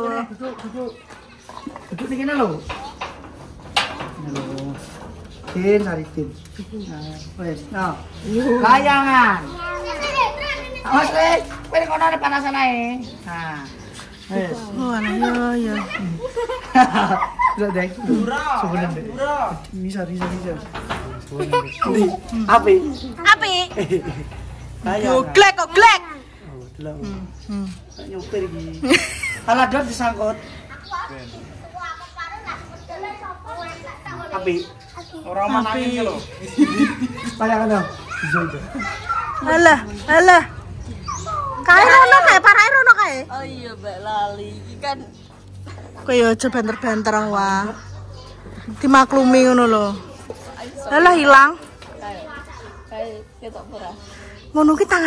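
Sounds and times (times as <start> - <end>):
young children talking and calling out: 0.0 - 55.0
children shouting while playing: 8.6 - 11.5, 36.3 - 42.9.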